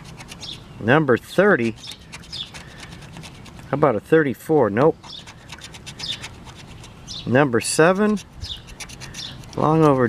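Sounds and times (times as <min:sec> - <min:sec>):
scraping lottery ticket coating: 0:00.0 - 0:04.0, 0:04.7 - 0:10.0.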